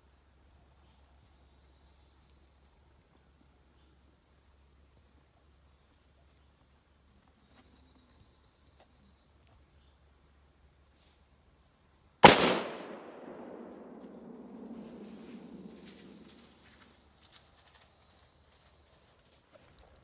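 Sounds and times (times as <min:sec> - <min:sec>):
rifle shot echoing: 0:12.2 - 0:16.5.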